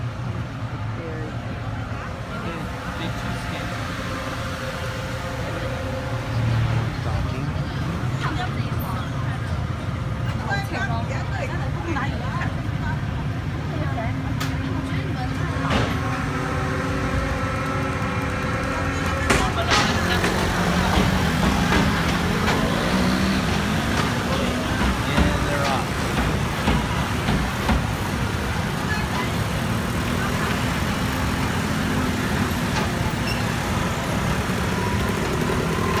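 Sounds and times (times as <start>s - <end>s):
scooter engines revving: 0.0s - 36.0s
chatter of passengers: 0.6s - 33.6s.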